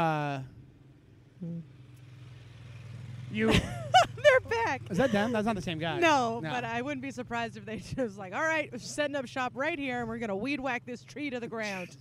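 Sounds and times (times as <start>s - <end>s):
person humming mm: 1.4s - 1.7s.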